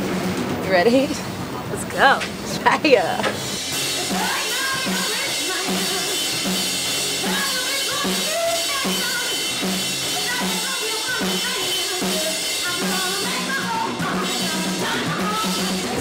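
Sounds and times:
drum kit beat: 0:00.7 - 0:16.0
woman singing: 0:01.8 - 0:06.6, 0:07.2 - 0:16.0.

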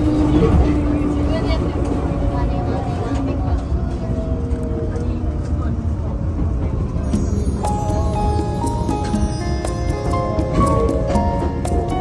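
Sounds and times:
electric train rumbling: 0:00.0 - 0:12.0.

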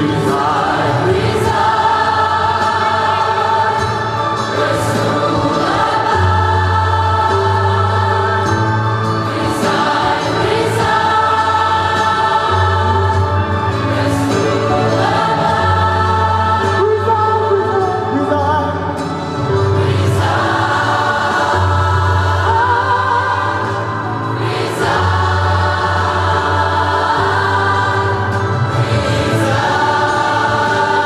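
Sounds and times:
gospel choir singing in harmony: 0:00.0 - 0:31.0.

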